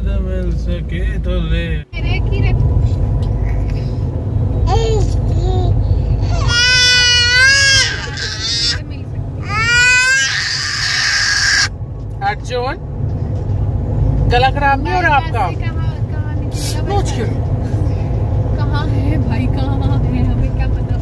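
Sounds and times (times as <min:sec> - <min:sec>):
car cabin road and engine rumble: 0:00.0 - 0:21.0
baby babbling: 0:04.7 - 0:08.8, 0:09.4 - 0:11.7.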